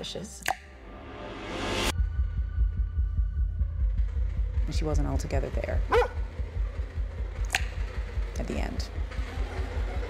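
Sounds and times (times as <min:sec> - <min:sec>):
low heartbeat-like pulsing: 0:01.9 - 0:10.0.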